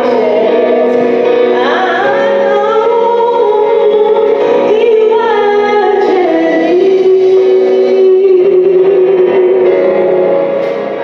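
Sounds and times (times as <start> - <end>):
woman singing gospel song: 0.0 - 9.8.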